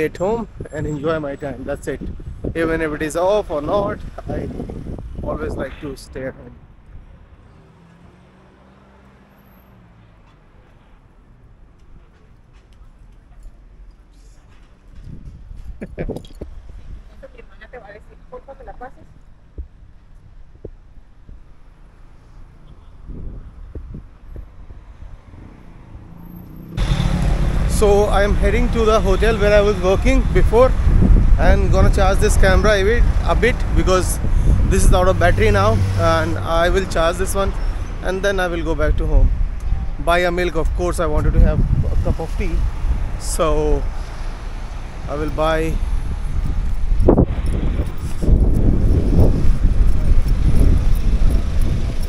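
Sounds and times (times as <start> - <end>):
wind rumble on microphone: 0.0 - 7.4, 14.8 - 17.6, 18.4 - 21.7, 22.7 - 26.0, 26.8 - 52.0
car passing: 3.3 - 14.9, 16.5 - 52.0.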